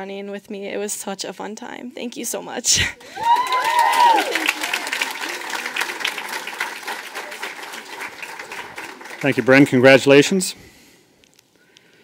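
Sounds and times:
audience applauding: 3.0s - 10.4s
people whooping: 3.1s - 8.8s.

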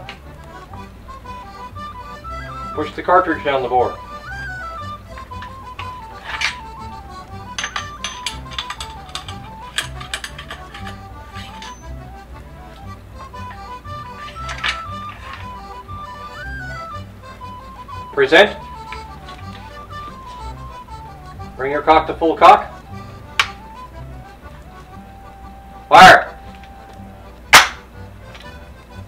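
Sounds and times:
slow background music: 0.0s - 29.0s
metal ramrod clinking in barrel: 6.2s - 6.7s, 7.5s - 11.9s.

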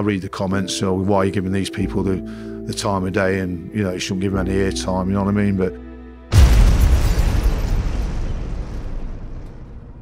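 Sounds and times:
deep explosion rumble: 6.3s - 10.0s.

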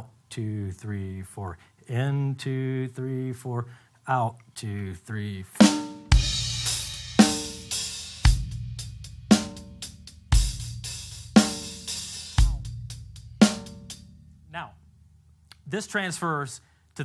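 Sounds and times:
bass drum: 5.6s - 14.4s
ringing snare or tom stroke: 13.4s - 14.1s.

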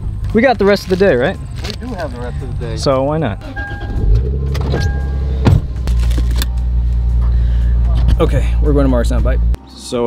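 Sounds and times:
car interior rumble: 0.0s - 9.6s.

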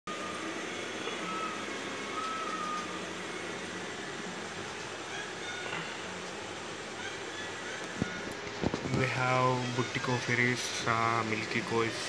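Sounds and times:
mechanical hiss and hum: 0.1s - 12.0s.

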